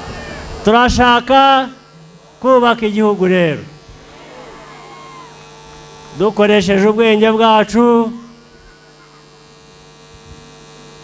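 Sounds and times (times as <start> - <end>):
electrical mains hum: 0.0 - 11.0
man's amplified voice: 0.6 - 3.8, 6.1 - 8.4.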